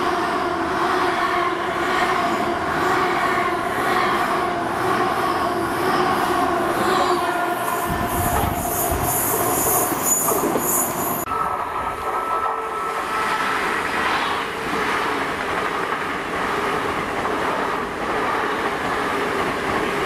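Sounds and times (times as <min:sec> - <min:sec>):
train approaching rumble: 0:00.0 - 0:20.0
train humming: 0:00.0 - 0:20.0
high wheel squeal: 0:06.9 - 0:11.3.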